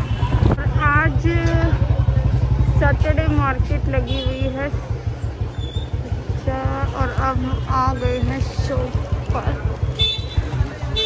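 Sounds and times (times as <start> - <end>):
motorcycle engine running: 0.0 - 11.0
voices talking: 0.0 - 11.0.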